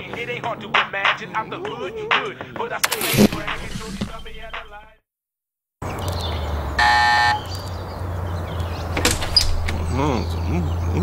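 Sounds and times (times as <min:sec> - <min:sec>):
doorbell buzzing: 0:06.8 - 0:07.5.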